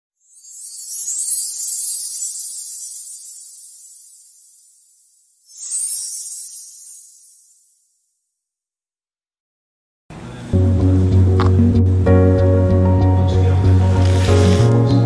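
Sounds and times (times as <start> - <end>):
airy whoosh and shimmer effects: 0.2 - 8.1.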